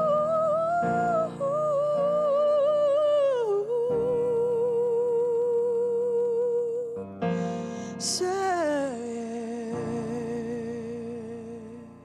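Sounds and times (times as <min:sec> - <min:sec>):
woman singing with vibrato: 0:00.0 - 0:07.1
piano chords: 0:00.0 - 0:12.0.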